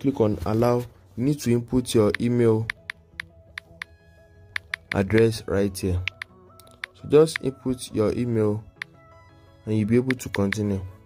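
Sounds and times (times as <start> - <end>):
soft background music: 0.0 - 11.0
smartphone keypress clicks: 4.5 - 5.0, 6.0 - 7.5.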